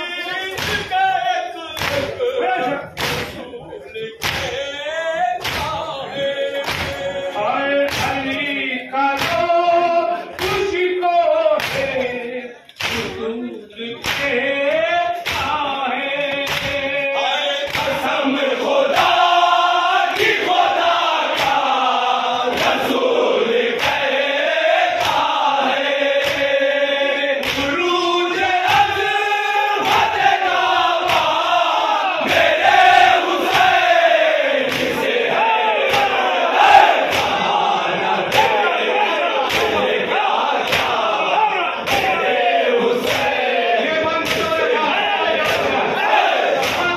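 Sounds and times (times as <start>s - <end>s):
hands slapping on chests: 0.5s - 0.9s, 1.7s - 2.2s, 3.0s - 3.4s, 4.2s - 4.6s, 5.4s - 5.8s, 6.6s - 7.1s, 7.8s - 8.4s, 9.2s - 9.5s, 11.6s - 12.1s, 12.7s - 13.2s, 14.0s - 14.4s, 15.2s - 15.6s, 16.3s - 16.8s, 17.7s - 18.0s, 20.1s - 21.8s, 23.7s - 24.1s, 24.9s - 25.4s, 26.1s - 26.6s, 27.4s - 27.8s, 29.8s - 31.5s, 34.6s - 35.2s, 35.8s - 37.6s, 38.2s - 38.6s, 39.4s - 41.2s, 41.8s - 42.2s, 43.0s - 43.5s, 44.2s - 44.6s, 45.4s - 46.9s
men singing in chorus: 3.9s - 46.9s.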